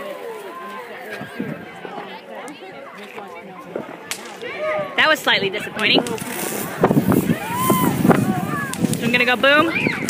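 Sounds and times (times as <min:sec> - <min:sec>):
people talking: 0:00.0 - 0:10.0
firework cracking: 0:04.0 - 0:09.6.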